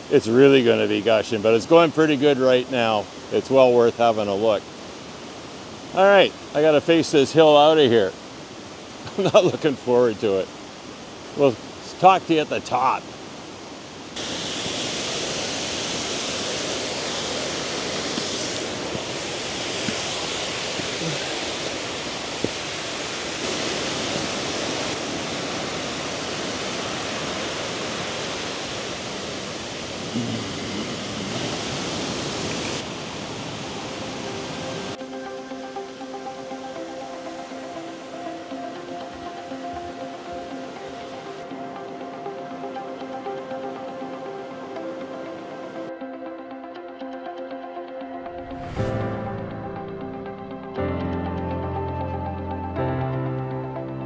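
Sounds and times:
waterfall roaring: 0.0s - 45.8s
background music of held chords: 34.9s - 54.0s.

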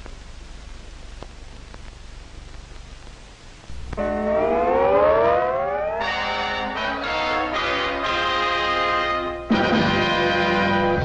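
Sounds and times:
tones gliding upward in pitch: 3.7s - 7.7s
cartoon theme music: 3.8s - 11.0s.

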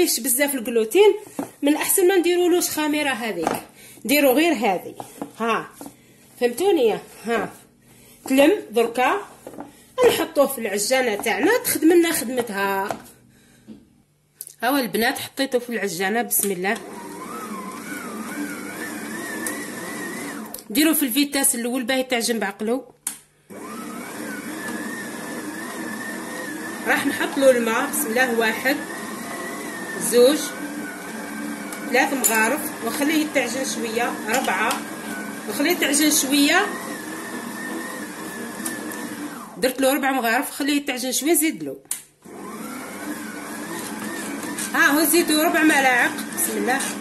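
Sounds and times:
stand mixer motor humming: 16.8s - 20.6s, 23.5s - 39.6s, 42.2s - 47.0s.

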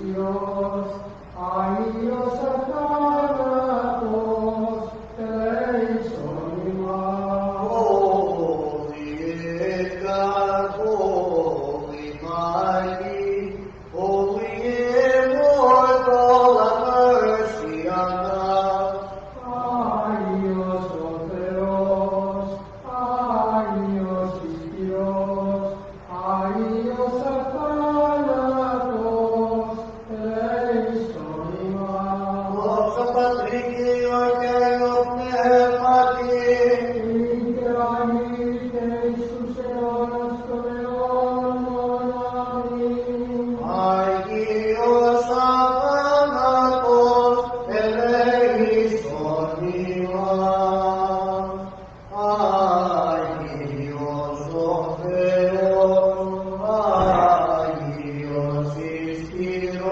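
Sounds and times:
man chanting: 0.0s - 59.9s.

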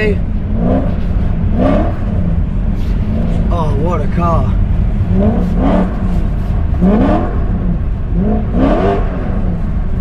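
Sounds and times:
car engine rumbling and revving: 0.0s - 10.0s.

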